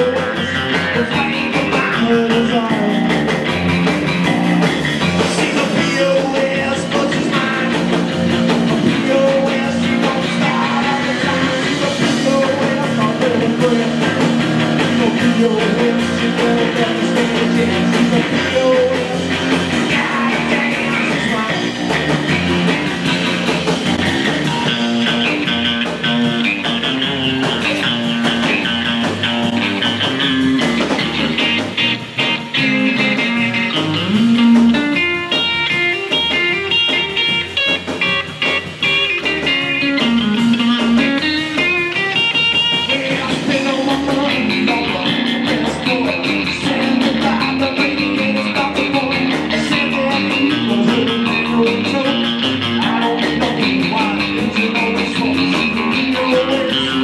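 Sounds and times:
rockabilly band playing live: 0.0s - 57.0s.

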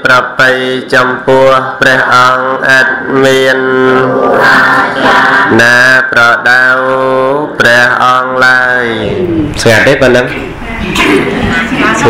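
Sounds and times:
man chanting: 0.0s - 4.5s, 5.4s - 10.4s.

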